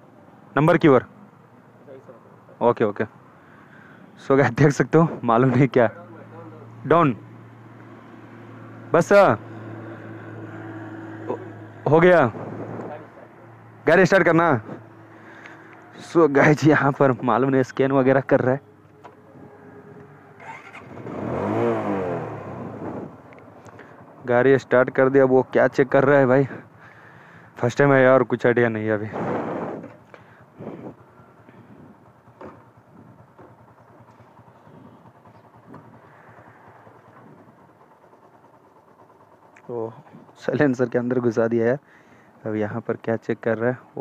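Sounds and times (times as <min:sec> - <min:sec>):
motorcycle engine starting and revving: 0:05.4 - 0:17.3, 0:18.8 - 0:25.2, 0:29.1 - 0:42.3.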